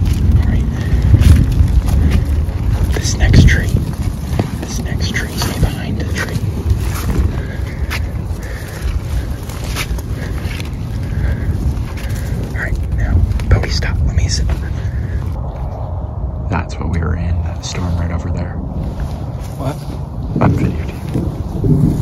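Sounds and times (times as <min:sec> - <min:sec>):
footsteps: 0:00.0 - 0:22.0
wind rumbling on microphone: 0:00.0 - 0:22.0
faint whispers: 0:00.2 - 0:21.3.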